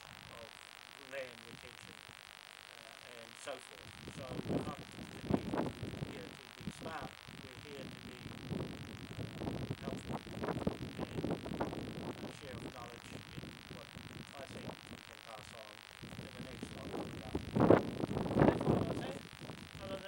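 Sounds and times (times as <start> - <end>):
man talking: 0.0 - 2.0, 2.8 - 8.4, 9.2 - 11.4, 12.2 - 17.6, 18.4 - 20.0.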